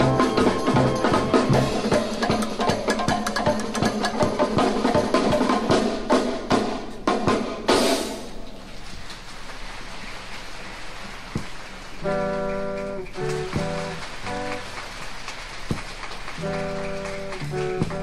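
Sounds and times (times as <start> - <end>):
band chord stabs: 0.0 - 2.2, 12.0 - 14.8, 16.4 - 18.0
loud drum passage: 0.0 - 8.6, 11.4 - 18.0.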